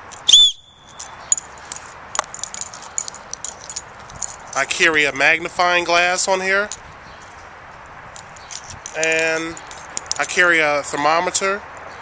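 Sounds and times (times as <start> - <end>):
shrill whistle blast: 0.3 - 1.0.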